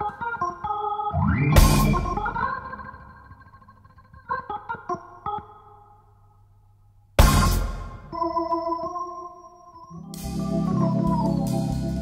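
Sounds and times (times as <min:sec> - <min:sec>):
cymbal crash: 0:01.2 - 0:02.4
bass hit: 0:01.2 - 0:02.5
jazz band playing: 0:10.0 - 0:12.0.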